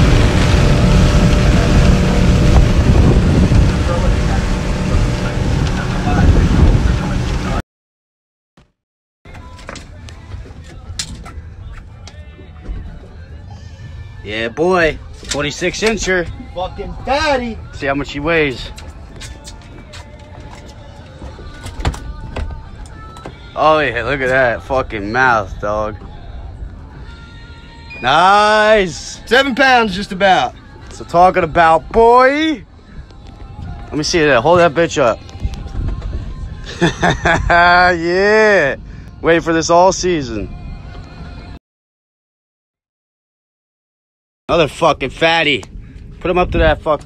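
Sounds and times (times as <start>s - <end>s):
low steady rumble: 0.0s - 7.6s
motorboat engine drone: 0.0s - 7.6s
water rushing along hull: 0.0s - 7.6s
clicks and knocks of fish handling: 9.3s - 12.2s.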